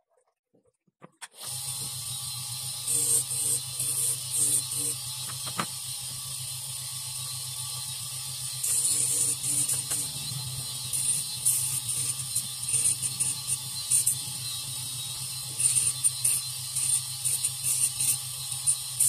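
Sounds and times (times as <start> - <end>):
small electric motor humming: 1.4 - 19.0.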